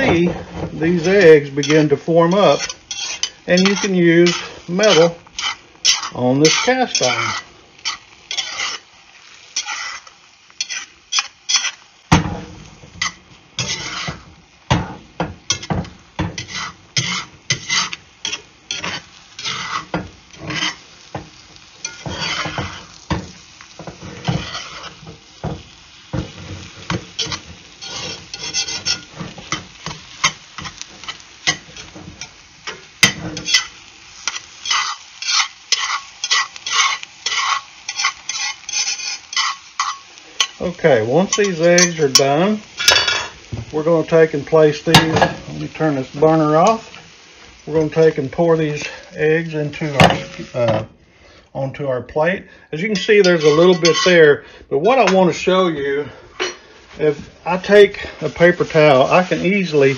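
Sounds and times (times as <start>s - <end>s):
metal spatula scraping skillet: 0.0s - 8.9s, 9.5s - 50.8s, 52.8s - 54.3s, 56.3s - 59.9s
eggs sizzling in butter: 0.0s - 59.9s.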